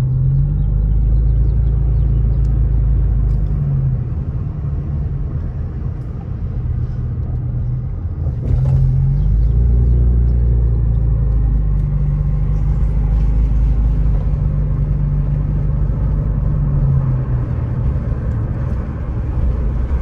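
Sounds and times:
car engine and road rumble: 0.0s - 20.0s.

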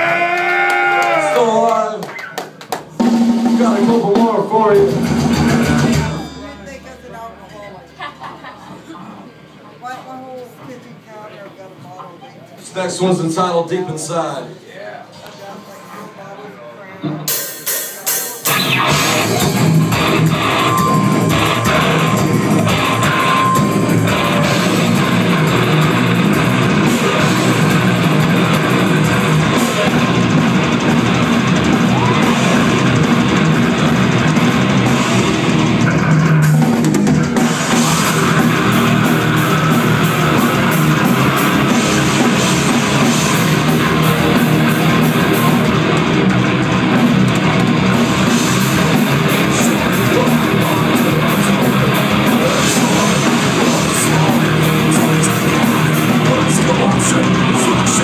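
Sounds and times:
heavy metal band playing live: 3.0s - 7.2s, 17.1s - 58.0s.

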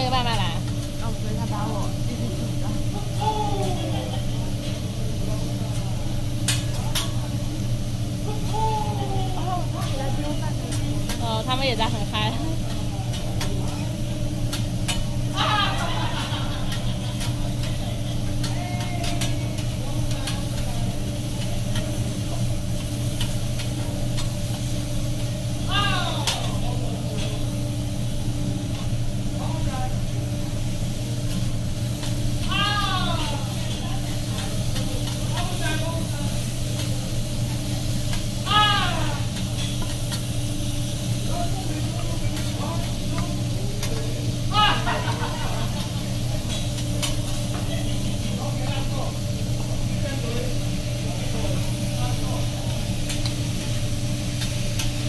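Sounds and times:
food sizzling on a griddle: 0.0s - 55.0s
voices calling out: 15.0s - 19.8s, 32.4s - 34.6s, 44.4s - 47.0s
metal spatula clicks and scrapes: 18.4s - 20.7s.

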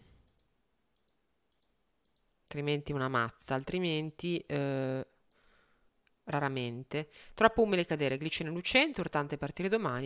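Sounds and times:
computer mouse clicks: 0.1s - 2.3s, 5.2s - 5.6s.

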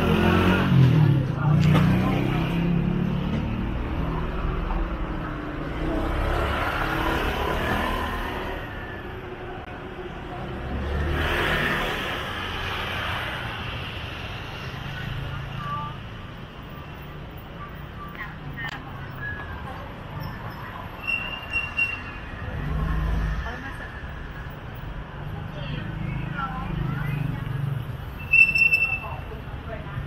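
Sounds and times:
traffic noise: 0.0s - 30.0s.

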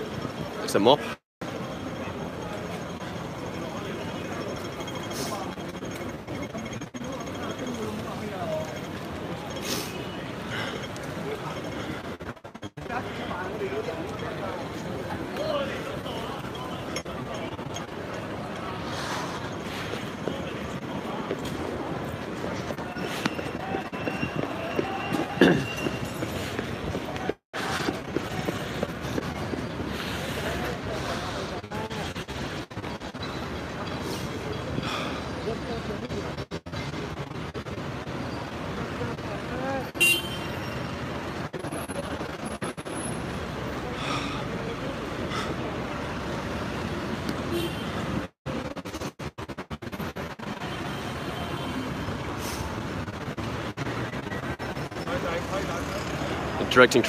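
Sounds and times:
many overlapping voices: 0.0s - 47.8s, 48.5s - 57.0s
vehicle traffic: 0.0s - 57.0s.

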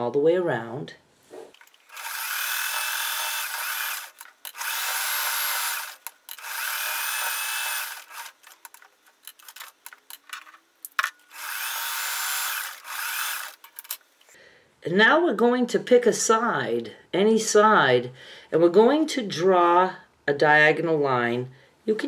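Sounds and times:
sewing machine stitching: 1.6s - 8.6s
small clicks and handling: 6.0s - 6.5s, 8.1s - 11.4s, 13.4s - 14.4s.

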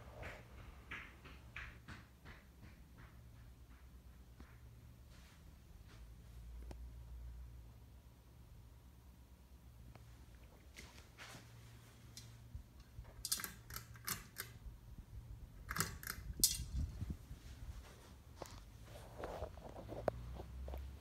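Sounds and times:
ceiling fan humming: 0.0s - 21.0s.

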